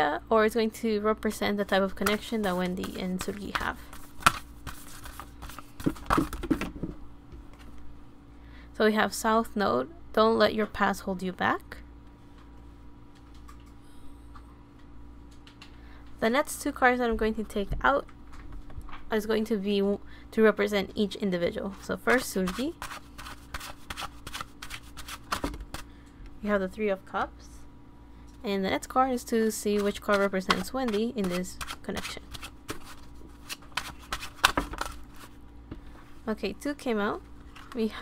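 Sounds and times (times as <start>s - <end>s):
cards rustling while shuffled: 1.7s - 6.7s, 21.9s - 25.9s, 29.4s - 35.4s
card slaps: 2.8s - 6.8s, 33.5s - 35.0s.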